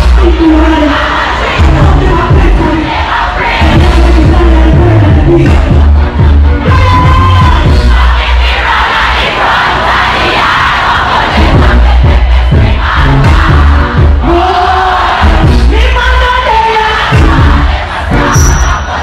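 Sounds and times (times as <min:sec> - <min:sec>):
dancehall music with pulsing bass: 0:00.0 - 0:09.1, 0:09.9 - 0:19.0
crowd cheering and singing along: 0:00.0 - 0:19.0.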